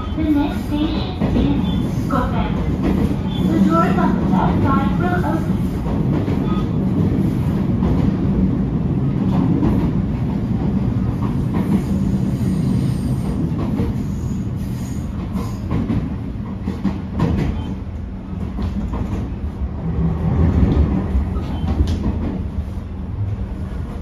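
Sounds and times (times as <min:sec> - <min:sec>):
railcar drive hum: 0:00.0 - 0:24.0.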